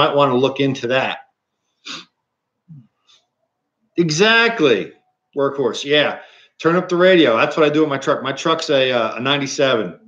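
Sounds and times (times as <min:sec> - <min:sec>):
man's voice: 0:00.0 - 0:01.2, 0:04.0 - 0:10.0
short breathy sound: 0:01.8 - 0:02.1.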